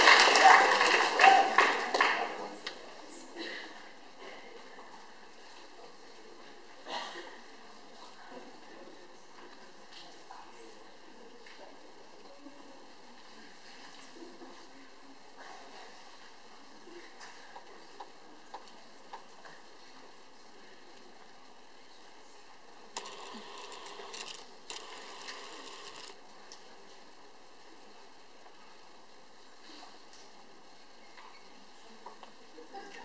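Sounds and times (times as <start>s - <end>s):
faint background noise: 0.0s - 33.0s.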